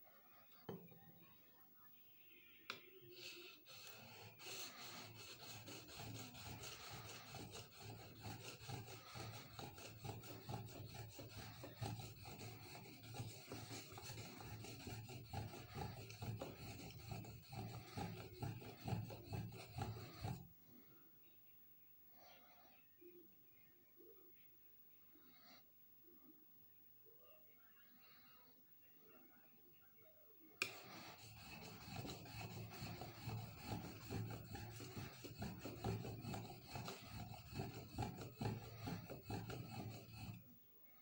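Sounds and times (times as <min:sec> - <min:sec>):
blade scraping on whetstone: 0:03.2 - 0:20.5, 0:30.6 - 0:40.4.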